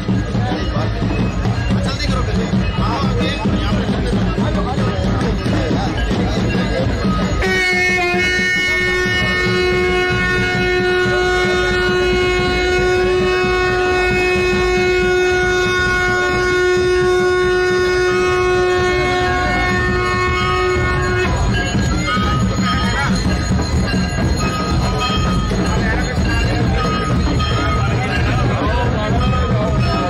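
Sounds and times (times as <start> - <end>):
low rumble of crowd: 0.0 - 30.0
steady horn-like note: 7.4 - 22.4.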